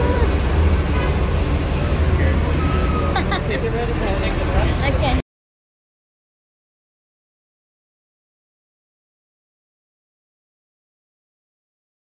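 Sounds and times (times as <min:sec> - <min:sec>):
bus engine rumble: 0:00.0 - 0:05.2
faint voices: 0:00.0 - 0:05.2.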